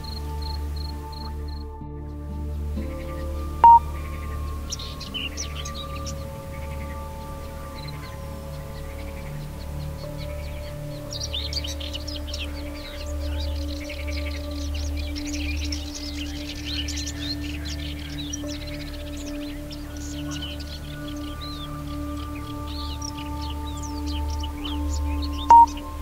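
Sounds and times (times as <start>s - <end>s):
ambient drone music: 0.0s - 26.0s
small birds chirping: 0.0s - 26.0s.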